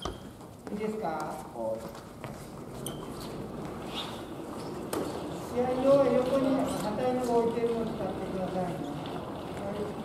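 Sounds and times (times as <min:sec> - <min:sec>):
person talking: 0:00.7 - 0:02.0, 0:05.5 - 0:09.0.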